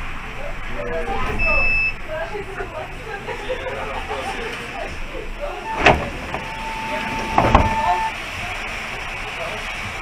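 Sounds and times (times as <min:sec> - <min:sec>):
bus brakes squealing: 0:05.6 - 0:08.2.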